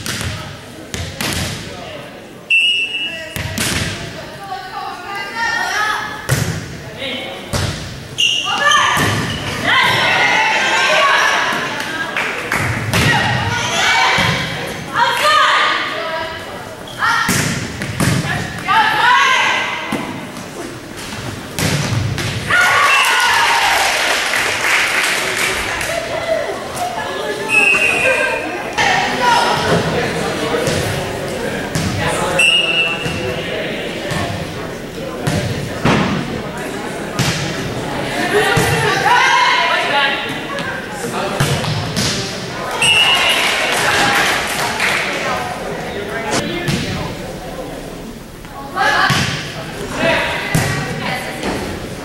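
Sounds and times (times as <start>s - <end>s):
referee's whistle: 2.5s - 3.2s, 8.2s - 9.5s, 27.5s - 28.4s, 32.4s - 33.1s, 42.8s - 43.4s
players shouting and cheering: 8.3s - 17.3s, 18.2s - 20.3s, 22.4s - 35.5s, 36.5s - 47.8s.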